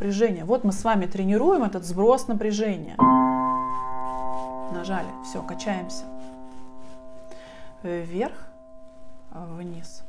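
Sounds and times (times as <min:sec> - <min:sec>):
piano notes ringing: 0:03.0 - 0:10.0.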